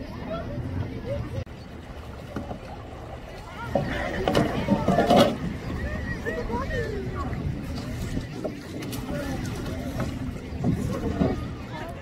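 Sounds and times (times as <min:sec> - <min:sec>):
distant chatter of people: 0:00.0 - 0:12.0
wind rumble on microphone: 0:00.0 - 0:12.0.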